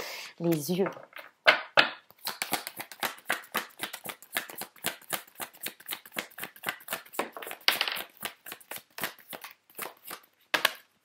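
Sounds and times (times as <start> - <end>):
cards being shuffled: 2.1 - 10.8.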